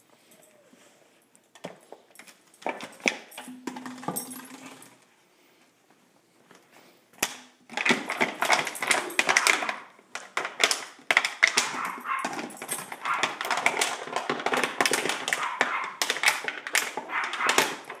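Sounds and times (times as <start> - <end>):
dog chewing plastic bottle: 7.7 - 18.0.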